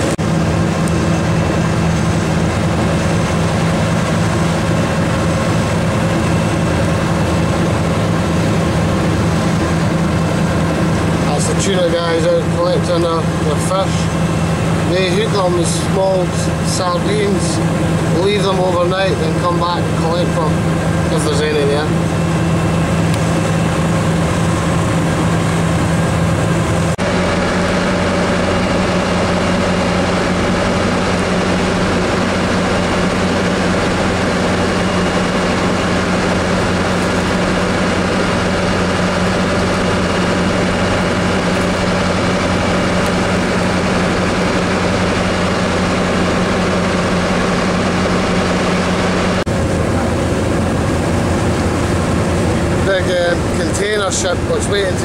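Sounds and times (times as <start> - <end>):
boat engine droning: 0.0 - 55.0
rushing wind: 0.0 - 55.0.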